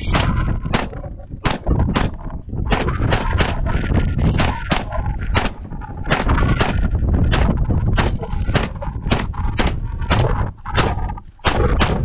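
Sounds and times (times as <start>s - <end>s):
gunshots: 0.0s - 12.0s.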